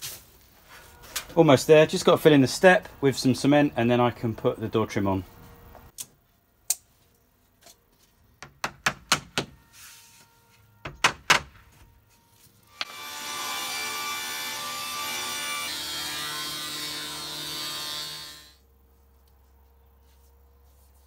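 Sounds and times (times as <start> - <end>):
panel saw cutting a board: 12.7 - 18.6.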